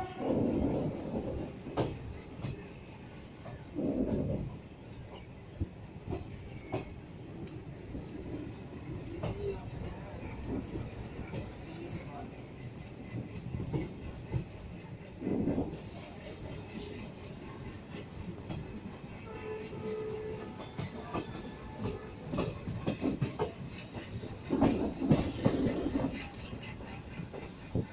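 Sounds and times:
train wheels rumbling on track: 0.0s - 27.9s.

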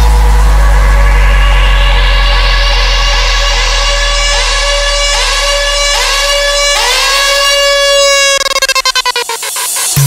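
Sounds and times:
buzzy siren-like synth lead: 0.0s - 10.0s.

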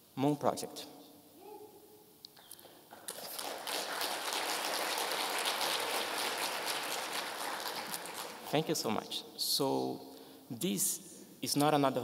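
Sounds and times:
audience applauding: 2.9s - 8.6s.

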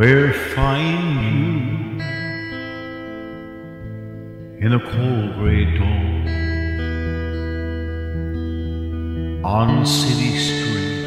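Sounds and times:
guitar chord ringing: 0.2s - 11.0s
lower guitar note: 0.9s - 11.0s.

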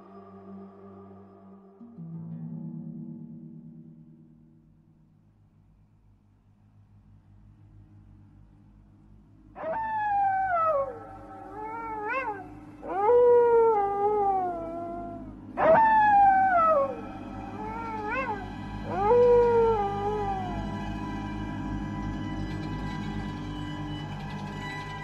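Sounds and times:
low steady drone: 0.0s - 25.0s
eerie animal howling cries: 9.6s - 25.0s.

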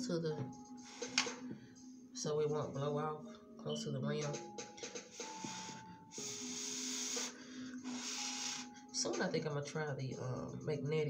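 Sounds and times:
person blowing air: 5.1s - 8.8s.

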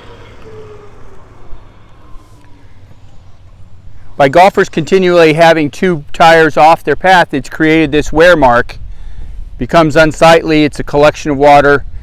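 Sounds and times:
golf cart motor whine: 0.0s - 4.1s
steady low hum: 0.0s - 9.9s.

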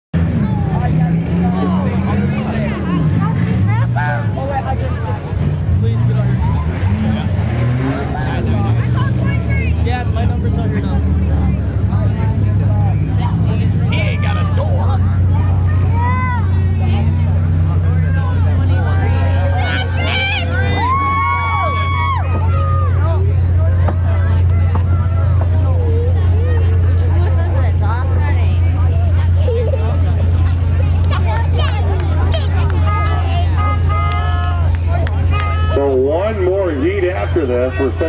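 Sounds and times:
car engines revving and idling: 0.2s - 38.0s
voices chattering: 0.2s - 38.0s.

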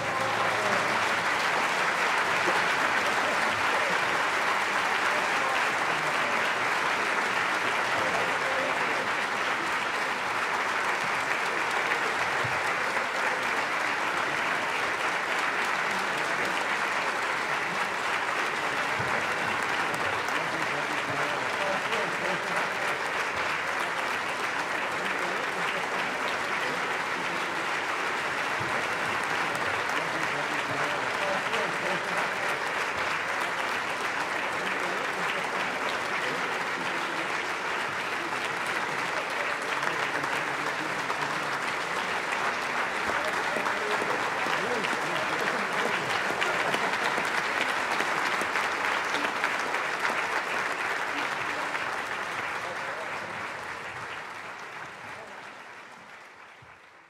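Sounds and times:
audience applauding: 0.0s - 57.0s.

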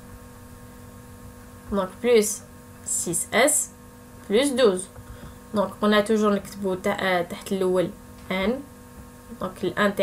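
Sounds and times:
electrical mains hum: 0.0s - 10.0s
person speaking: 1.7s - 8.7s, 9.3s - 10.0s.

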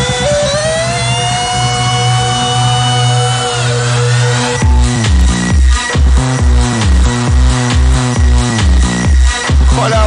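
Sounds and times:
held synth chord: 0.0s - 5.2s
steady bass line: 0.0s - 10.0s.

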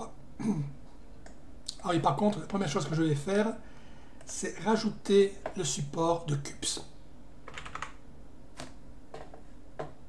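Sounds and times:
computer keyboard typing: 7.5s - 8.0s.

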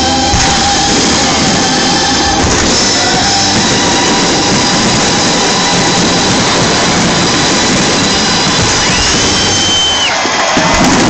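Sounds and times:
fireworks barrage roar: 0.0s - 11.0s.

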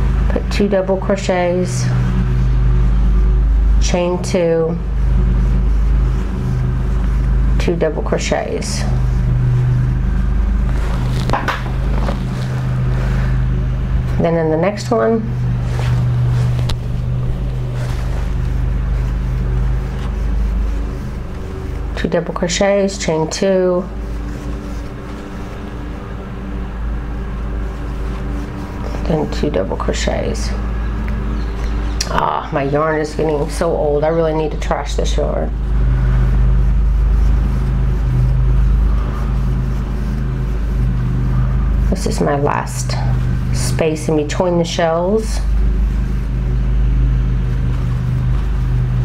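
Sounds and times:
steady low hum: 0.0s - 49.0s.

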